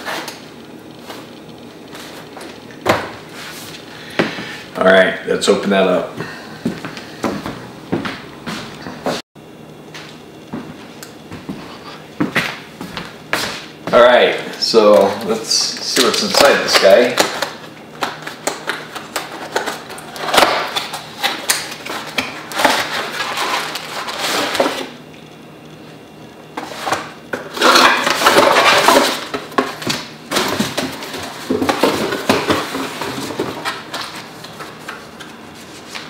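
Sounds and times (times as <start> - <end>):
cardboard box being unpacked: 18.9 - 24.9.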